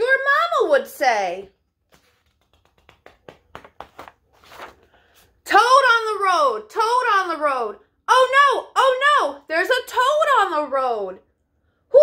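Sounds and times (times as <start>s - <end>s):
book page turning: 1.8s - 5.4s.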